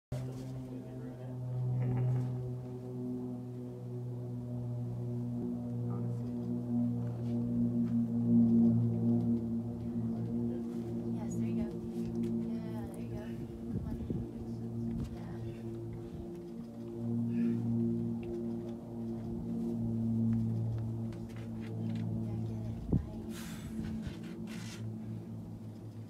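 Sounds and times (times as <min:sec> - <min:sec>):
low droning tone: 0:00.1 - 0:26.0.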